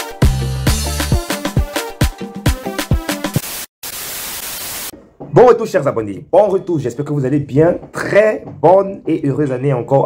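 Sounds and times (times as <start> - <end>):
afrobeat music: 0.0 - 3.4
tv static hiss: 3.4 - 4.9.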